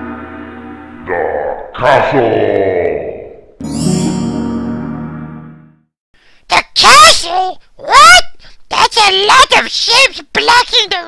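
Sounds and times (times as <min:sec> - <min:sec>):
excited vocal outbursts: 0:01.0 - 0:03.4, 0:06.5 - 0:11.0.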